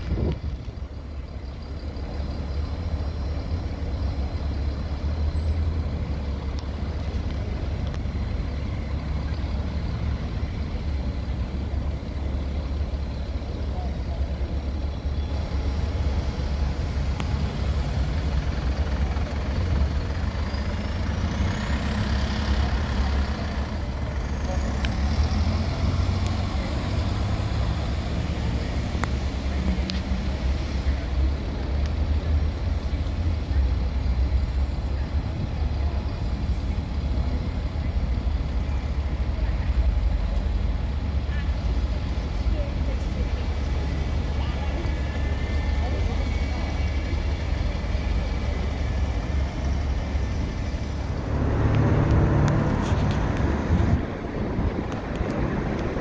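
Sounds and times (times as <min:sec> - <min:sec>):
bus engines rumbling: 0:00.0 - 0:56.0.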